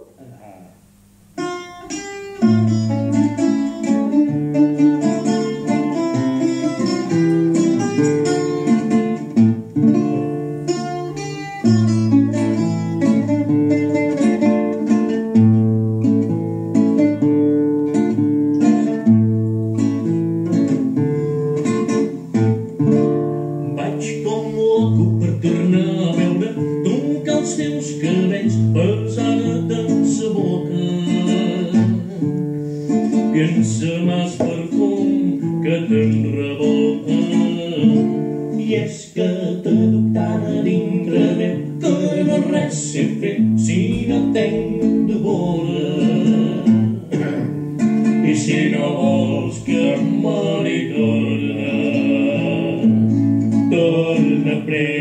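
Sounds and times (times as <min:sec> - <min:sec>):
classical guitar and lute playing: 0:01.3 - 0:55.0.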